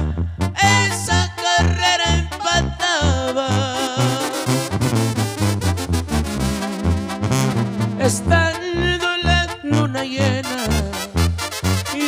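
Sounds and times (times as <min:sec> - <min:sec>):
person singing: 0:00.0 - 0:04.6, 0:08.0 - 0:11.2
brass section playing: 0:00.0 - 0:12.0
pulsing bass line: 0:00.0 - 0:12.0.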